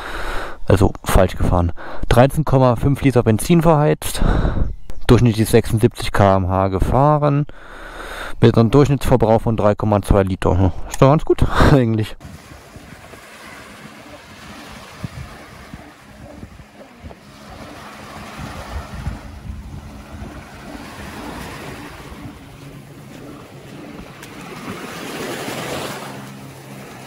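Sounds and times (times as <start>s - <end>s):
waves washing onto sandy beach: 12.2s - 27.0s
wind buffeting microphone: 12.2s - 27.0s.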